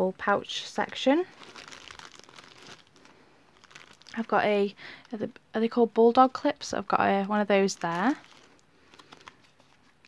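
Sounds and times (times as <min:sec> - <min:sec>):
fabric pouch rustling: 0:01.3 - 0:04.2, 0:07.6 - 0:10.0.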